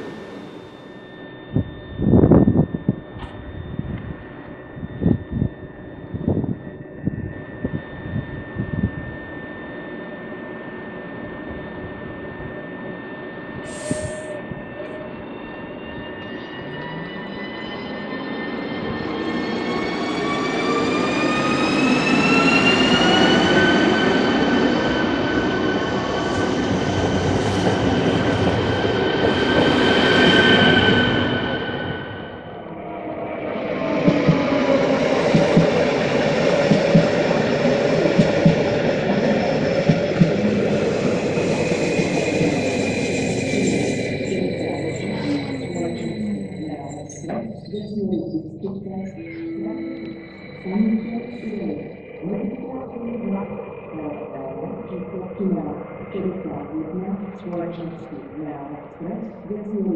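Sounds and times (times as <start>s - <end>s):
electric train motor whine: 0.0s - 54.2s.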